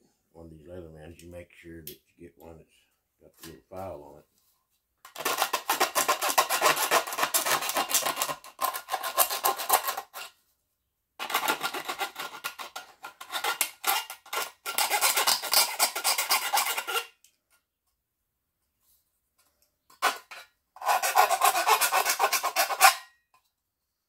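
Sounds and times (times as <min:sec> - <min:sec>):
file rasping on tin can rim: 0:05.1 - 0:10.4, 0:11.2 - 0:17.2, 0:20.0 - 0:23.2.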